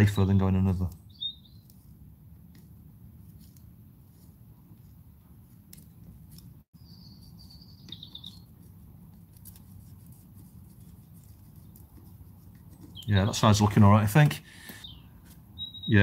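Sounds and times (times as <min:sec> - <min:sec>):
desoldering braid scratching: 0:08.0 - 0:13.1.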